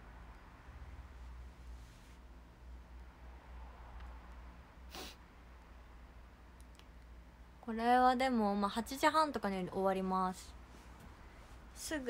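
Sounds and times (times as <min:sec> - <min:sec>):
low steady hum: 0:00.0 - 0:12.0
woman speaking: 0:07.6 - 0:10.6, 0:11.8 - 0:12.0.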